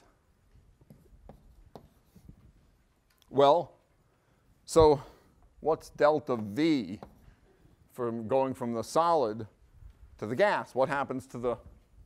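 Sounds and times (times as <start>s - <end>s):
chalk scratching on blackboard: 1.2s - 2.4s.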